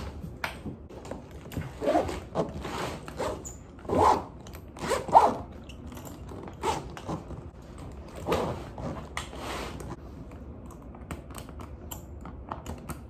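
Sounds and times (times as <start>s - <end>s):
suitcase zipper being pulled: 1.7s - 5.5s.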